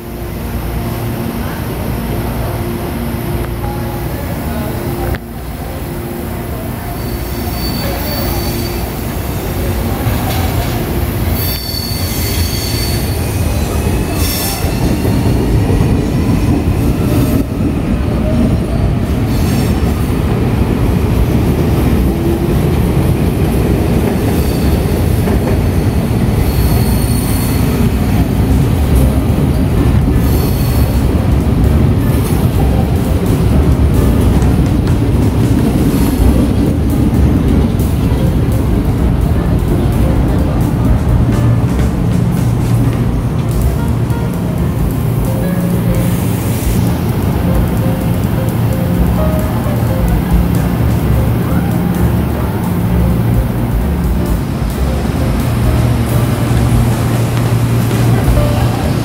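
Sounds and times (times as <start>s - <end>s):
train wheels rumbling: 0.0s - 59.0s
high wheel squeals: 7.0s - 9.4s, 11.2s - 15.3s, 26.4s - 27.9s.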